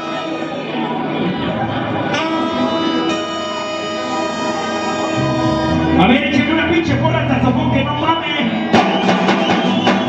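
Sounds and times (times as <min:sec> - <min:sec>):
sustained keyboard chord: 0:05.0 - 0:07.3
low bass note: 0:05.0 - 0:08.0.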